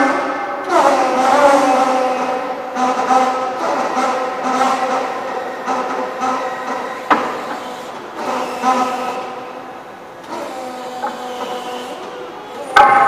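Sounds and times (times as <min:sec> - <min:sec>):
electric forklift motor whining: 0:00.0 - 0:13.0.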